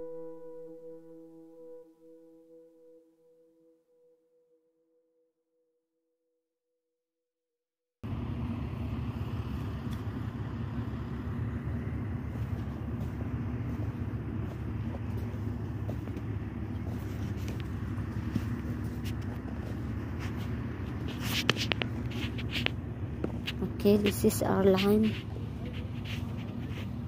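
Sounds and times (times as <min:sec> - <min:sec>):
engine running: 0:00.0 - 0:02.1, 0:08.0 - 0:27.0.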